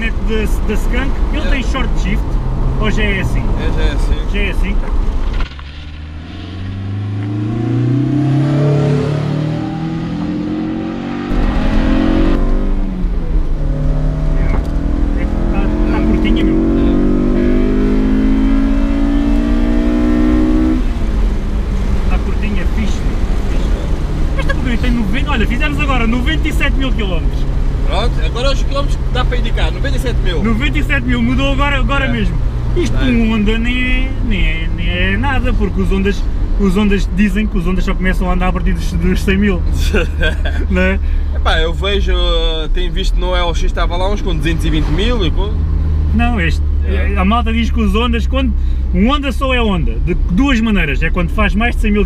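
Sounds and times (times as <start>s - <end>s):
car engine revving: 0.0s - 52.0s.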